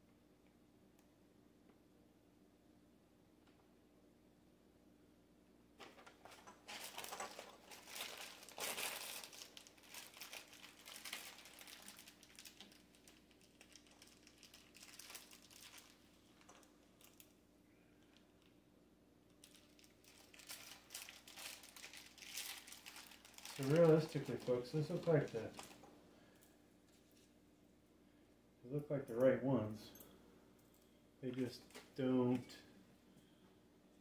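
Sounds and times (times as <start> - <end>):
screws sorted by hand: 5.8 - 9.5
packaging crinkling: 5.8 - 17.3, 19.4 - 25.9.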